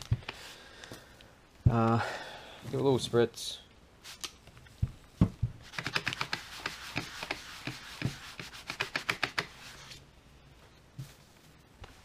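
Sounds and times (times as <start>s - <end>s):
rubbing on foam pad: 5.6s - 10.0s.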